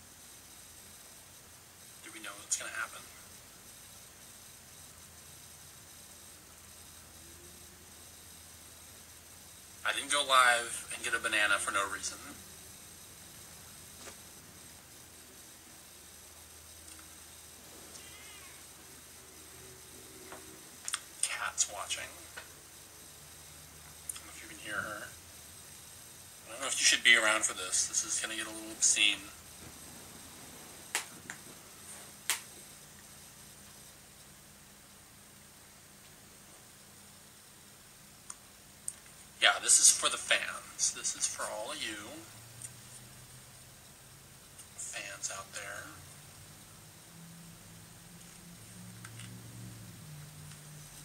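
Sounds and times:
cat meowing: 18.0 - 18.6.

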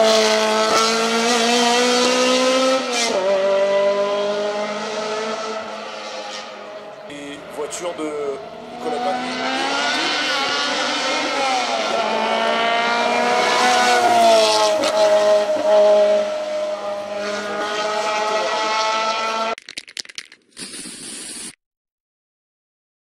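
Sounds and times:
race car engine passing at speed: 0.0 - 19.6
crackles: 19.6 - 21.6
short hiss: 20.5 - 21.6.

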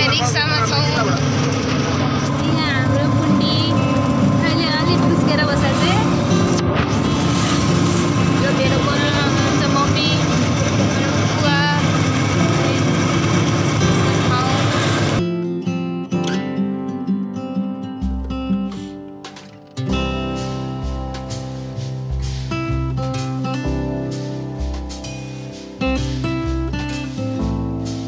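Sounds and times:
voices chattering: 0.0 - 3.7
road and wind noise: 0.0 - 15.2
music playing: 0.0 - 28.0.

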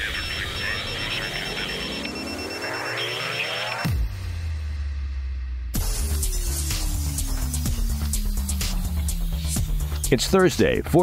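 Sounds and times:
crackling radio-like noise: 0.0 - 4.0
low bass drone: 5.7 - 10.2.

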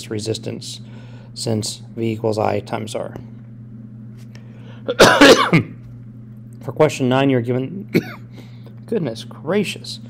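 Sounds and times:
man coughing: 4.9 - 5.8, 7.9 - 8.3.

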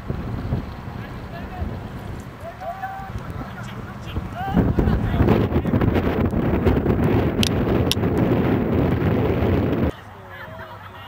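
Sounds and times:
wind buffeting microphone: 0.0 - 10.6.

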